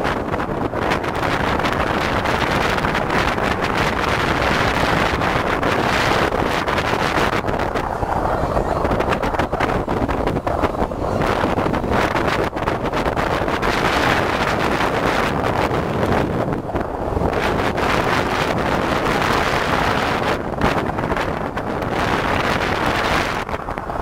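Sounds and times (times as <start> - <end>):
wind noise on microphone: 0.0 - 24.0.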